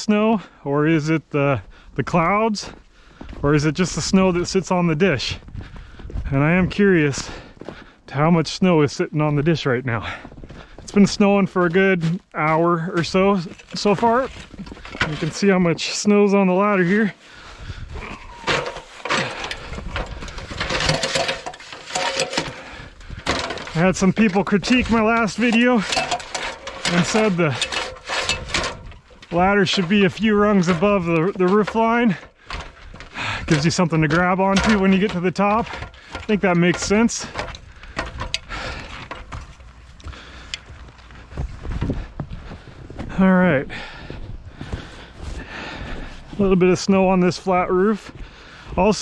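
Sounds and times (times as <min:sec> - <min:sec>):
knocks and scuffs on ladder rungs: 0:01.6 - 0:49.0
footsteps crunching in snow: 0:02.6 - 0:08.0, 0:09.2 - 0:20.6, 0:38.5 - 0:43.2, 0:43.8 - 0:49.0
knocks and rustles: 0:18.1 - 0:40.0.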